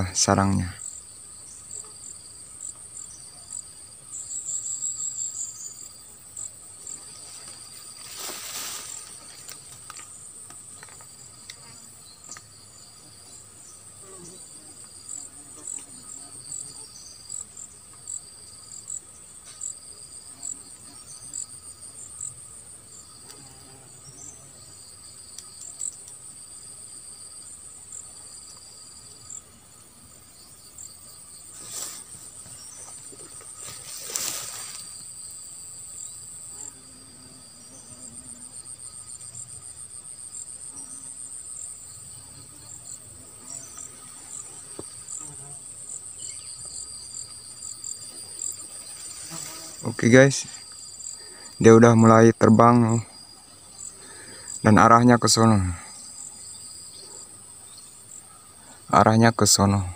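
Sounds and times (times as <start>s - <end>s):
insects trilling: 0.0s - 59.9s
pulsing insect chirp: 0.0s - 59.9s.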